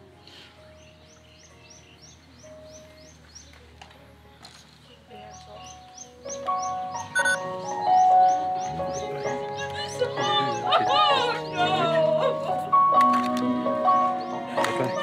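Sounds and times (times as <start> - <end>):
small bird chirping: 4.8 - 10.7
instrumental song music: 5.2 - 15.0.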